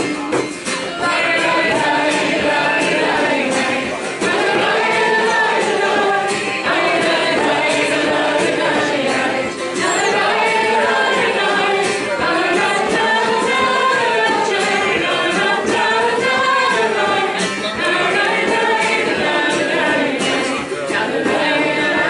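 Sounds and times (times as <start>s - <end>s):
group singing unaccompanied: 0.3s - 22.0s.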